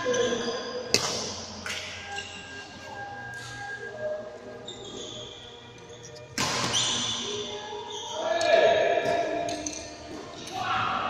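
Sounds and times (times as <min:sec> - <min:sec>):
shoes squeaking on court floor: 0:00.0 - 0:03.9, 0:04.5 - 0:10.5
rackets striking shuttlecocks: 0:00.9 - 0:02.3, 0:06.2 - 0:07.3, 0:08.4 - 0:10.6.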